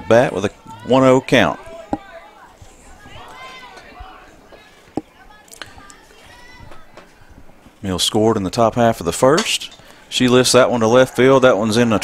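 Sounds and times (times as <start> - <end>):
distant voices calling out: 0.0 - 7.9.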